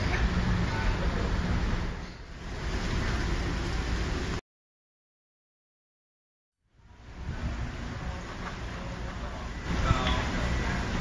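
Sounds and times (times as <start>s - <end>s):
street noise rumble and hiss: 0.0s - 4.4s, 6.6s - 11.0s.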